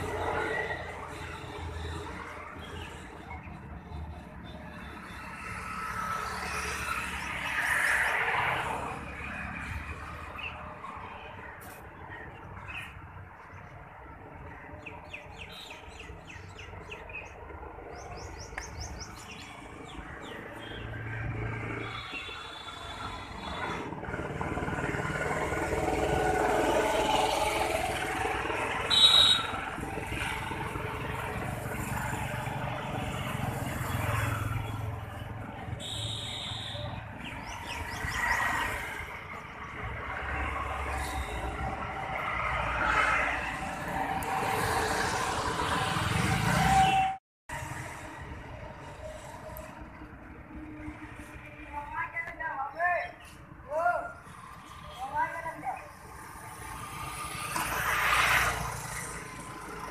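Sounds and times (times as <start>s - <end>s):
road traffic passing: 0.0s - 59.9s
birds chirping: 9.6s - 22.7s, 35.8s - 39.7s.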